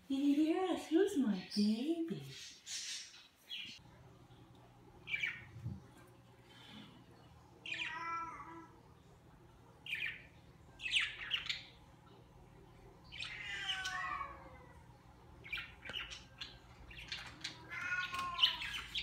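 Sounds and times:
chirping calls: 5.0s - 5.6s, 9.8s - 12.3s, 12.9s - 19.0s.

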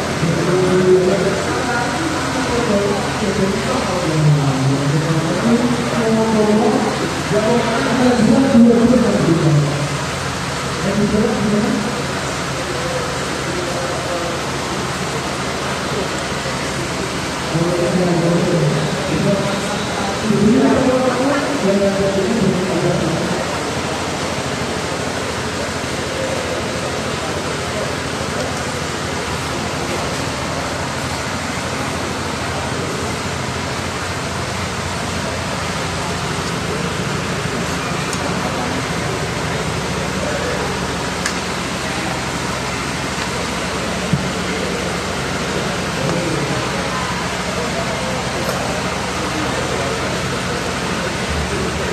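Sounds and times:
faint voices murmuring: 0.0s - 51.9s
steady background noise: 0.0s - 51.9s.

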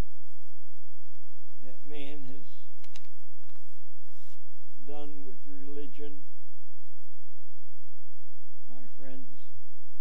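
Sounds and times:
man's voice: 1.6s - 2.7s, 4.8s - 6.2s, 8.7s - 9.5s
paper rustling: 2.8s - 4.4s.

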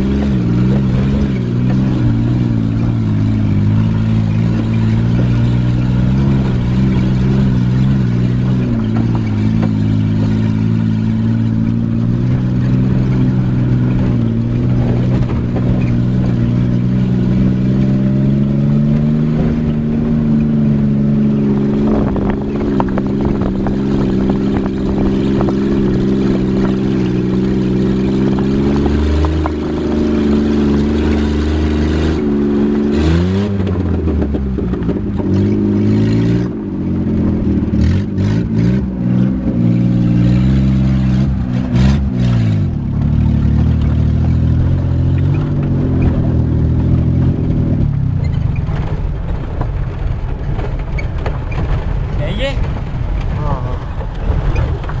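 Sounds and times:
rattling and clatter over bumps: 0.0s - 55.0s
vehicle engine from inside cabin: 0.0s - 55.0s.

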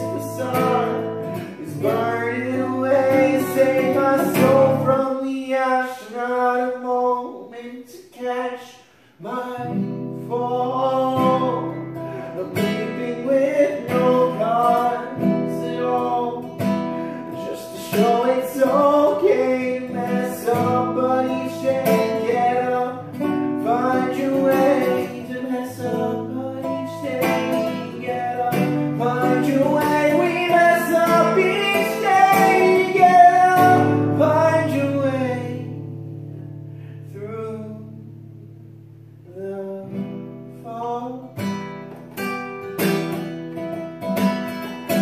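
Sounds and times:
acoustic guitar: 0.0s - 45.0s.

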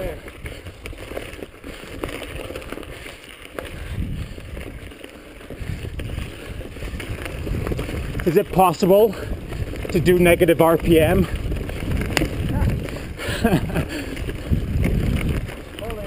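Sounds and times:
bike rattling and clicking: 0.0s - 16.0s
bike tyre rumble: 0.0s - 16.0s
wind on microphone: 1.9s - 16.0s.

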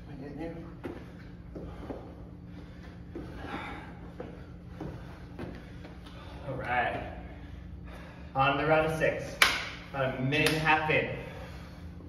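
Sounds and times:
steady low hum: 0.0s - 12.0s
men breathing: 0.7s - 8.8s, 11.0s - 12.0s.

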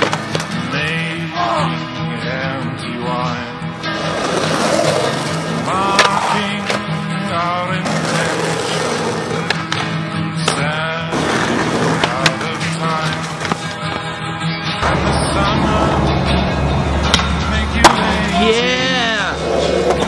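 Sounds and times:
skateboard clacks: 0.0s - 0.6s, 4.4s - 6.8s, 7.8s - 14.2s
backing music: 0.0s - 20.0s
skateboard wheels on rough pavement: 3.9s - 14.4s, 19.4s - 20.0s.

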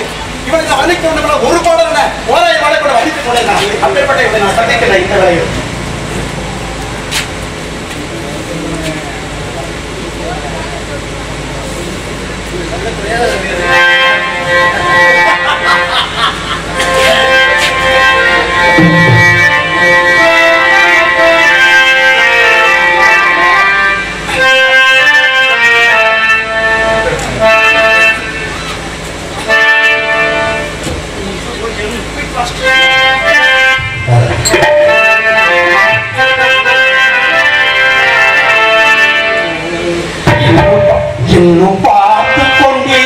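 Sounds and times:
harmonium melody: 0.0s - 8.7s, 12.7s - 43.0s
hand drum strokes: 18.7s - 19.7s.

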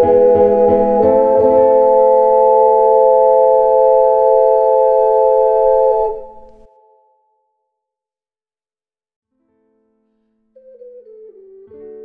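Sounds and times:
ocarinas holding a chord: 0.0s - 7.0s.

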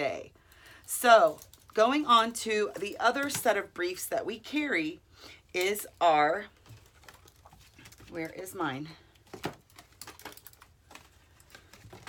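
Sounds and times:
clothing rustling: 6.6s - 12.0s.

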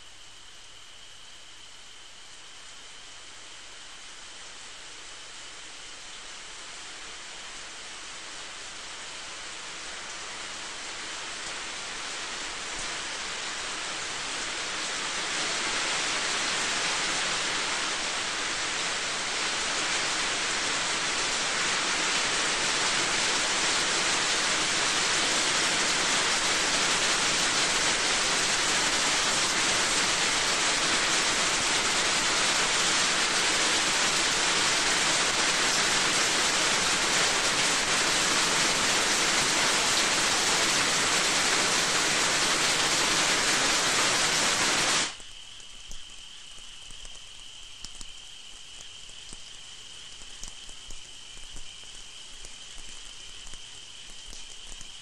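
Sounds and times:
heavy rain: 5.5s - 55.0s.

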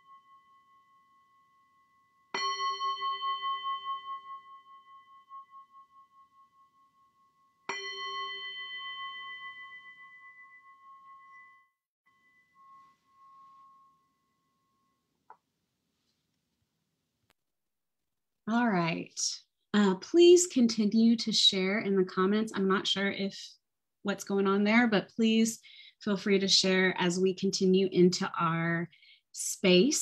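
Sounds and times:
singing bowl ringing: 0.0s - 15.2s.

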